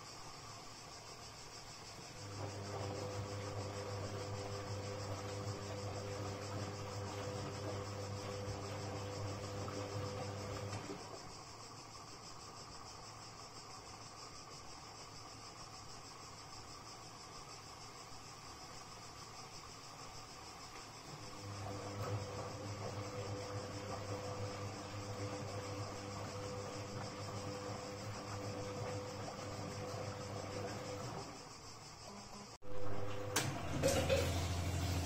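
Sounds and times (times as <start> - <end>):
steady high-pitched hiss: 0.0 - 23.4, 30.7 - 32.6
washing machine tumbling: 2.0 - 11.4, 21.0 - 31.8, 32.6 - 35.0.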